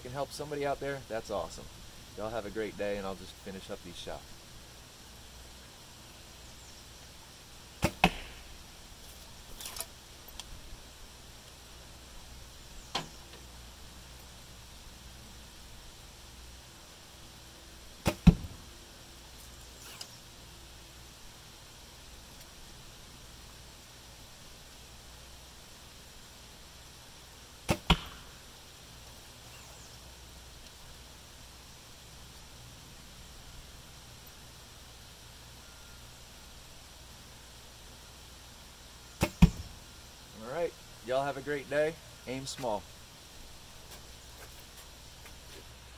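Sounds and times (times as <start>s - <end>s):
arrow striking target: 7.8s - 8.5s, 18.0s - 18.6s, 27.6s - 28.4s, 39.2s - 39.7s.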